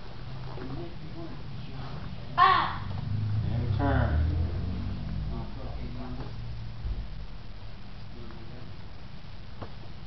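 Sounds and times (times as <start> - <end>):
child's high-pitched shout: 2.4 - 2.9.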